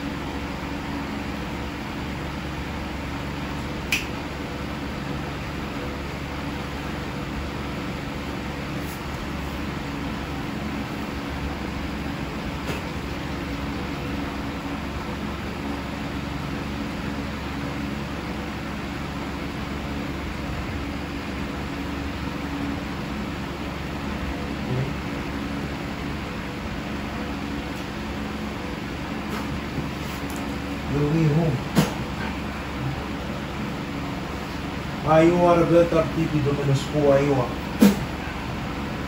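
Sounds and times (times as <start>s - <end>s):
electric fan whirring: 0.0s - 39.0s.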